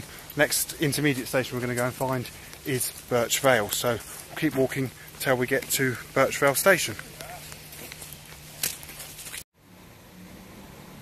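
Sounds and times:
footsteps on gravel: 0.0s - 9.4s
outdoor background noise: 0.0s - 11.0s.

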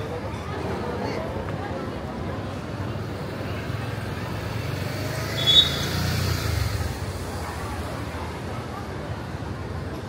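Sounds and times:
brief high squeak: 5.4s - 6.0s.

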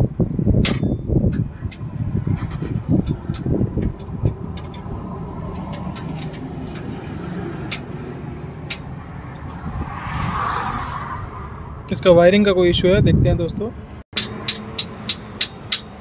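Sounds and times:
engine running with low rumble: 0.0s - 12.1s.

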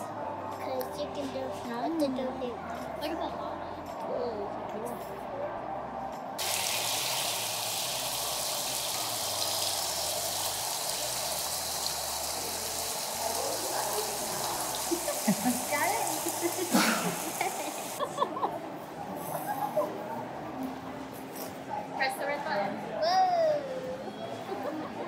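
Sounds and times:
fountain water splashing: 6.4s - 18.0s.

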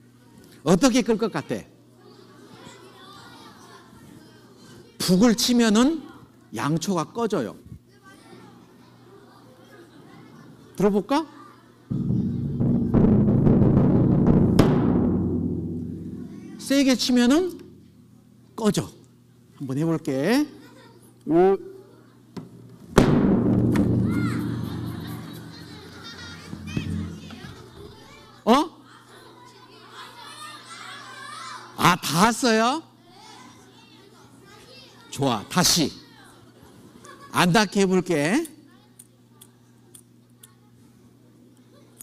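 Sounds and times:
bass drum boom: 11.9s - 18.2s, 23.0s - 28.0s
children calling out: 24.0s - 31.8s.

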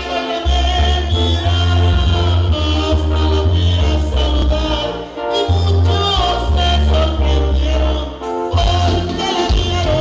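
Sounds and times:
brass band music: 0.0s - 10.0s.

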